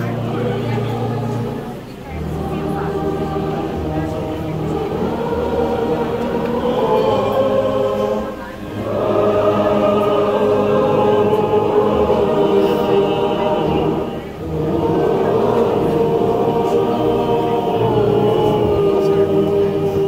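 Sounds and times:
congregation singing a hymn: 0:00.0 - 0:20.0
wind instruments playing: 0:00.0 - 0:20.0.

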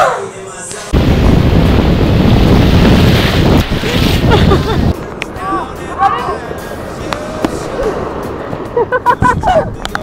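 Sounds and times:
ocean surf breaking: 0:00.9 - 0:09.0
wind buffeting microphone: 0:01.0 - 0:05.0.

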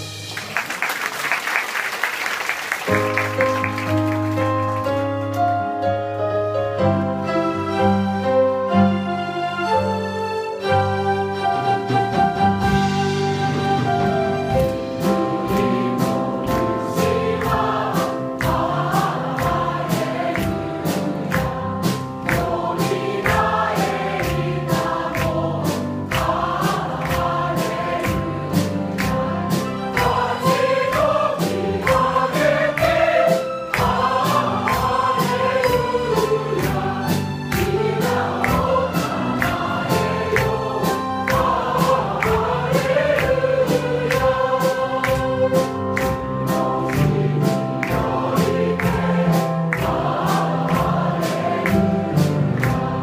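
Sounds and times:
accompaniment with steady beat: 0:12.3 - 0:53.0
choir singing praise song: 0:12.6 - 0:53.0.

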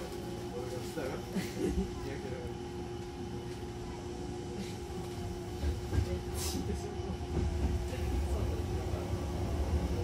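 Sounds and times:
steady hum: 0:00.0 - 0:10.0
train wheels rumbling on track: 0:05.0 - 0:10.0.

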